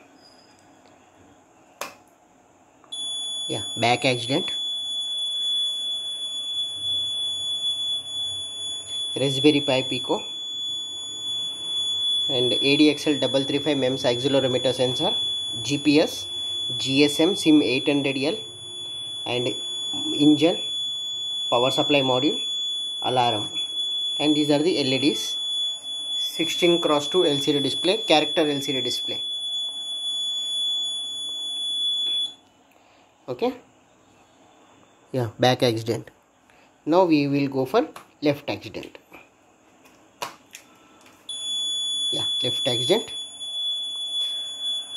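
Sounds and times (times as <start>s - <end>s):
high-pitched piezo alarm tone: 2.9s - 32.4s, 41.3s - 44.9s.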